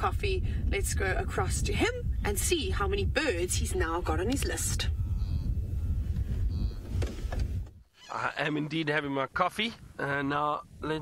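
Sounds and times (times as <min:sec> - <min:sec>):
low rumble: 0:00.0 - 0:07.8.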